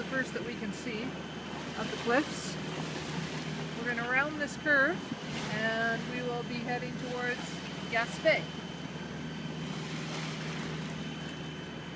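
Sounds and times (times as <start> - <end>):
boat engine drone: 0.0 - 11.9
water noise: 0.0 - 11.9.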